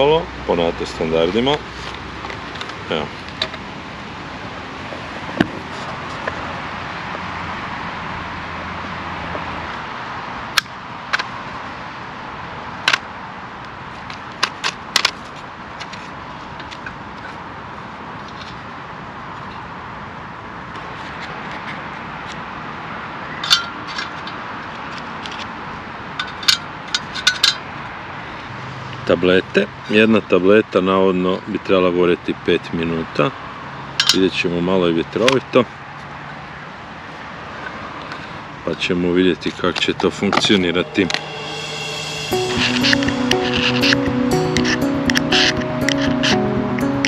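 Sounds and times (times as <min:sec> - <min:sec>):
outdoor background noise: 0:00.0 - 0:42.6.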